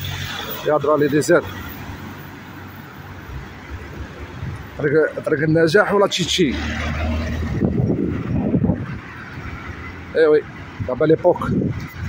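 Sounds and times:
wind buffeting microphone: 6.7s - 12.0s.

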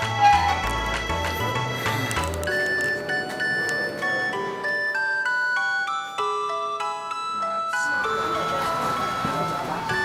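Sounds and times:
bright high melody: 0.0s - 10.0s.

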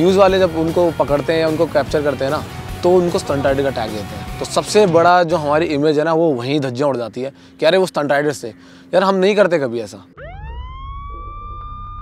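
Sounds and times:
police siren wailing: 10.1s - 12.0s.

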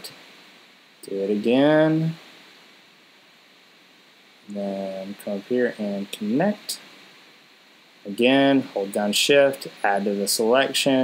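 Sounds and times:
faint room tone hiss: 0.0s - 11.0s
man speaking: 1.0s - 2.2s, 4.5s - 6.9s, 8.0s - 11.0s.

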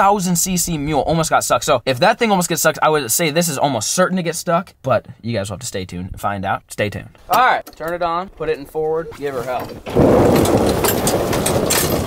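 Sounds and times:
tyres crunching over snow: 8.0s - 12.0s.

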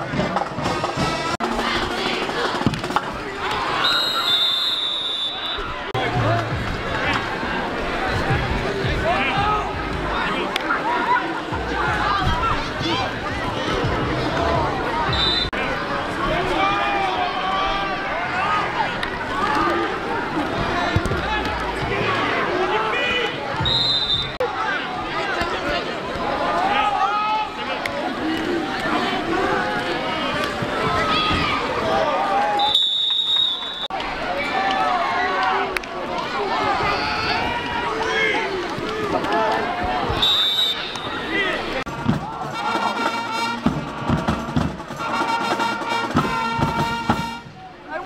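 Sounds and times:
crowd shouting and talking: 0.0s - 48.0s
referee whistle blasts: 3.8s - 5.8s, 15.1s - 15.6s, 23.6s - 24.4s, 32.6s - 33.9s, 40.2s - 41.3s.

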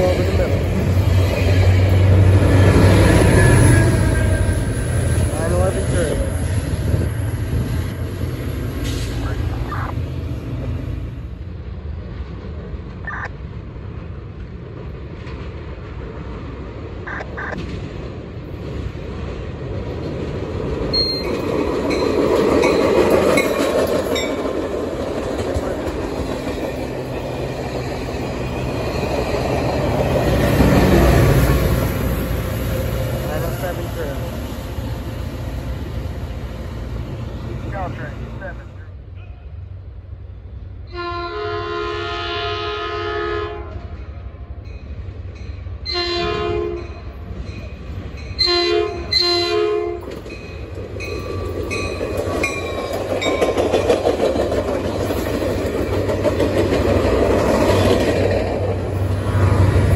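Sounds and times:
train wheels on rails: 0.0s - 40.8s, 43.5s - 59.9s
diesel locomotive rumbling: 0.0s - 59.9s.

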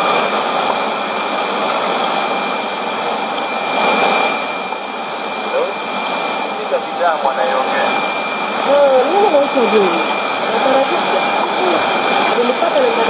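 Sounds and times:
radio static hiss: 0.0s - 13.0s
faint broadcast voice: 5.4s - 5.8s, 6.5s - 8.0s, 8.6s - 13.0s.

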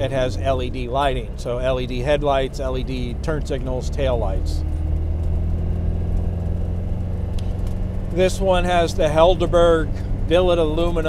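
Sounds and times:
car engine rumble while driving: 0.0s - 11.0s.

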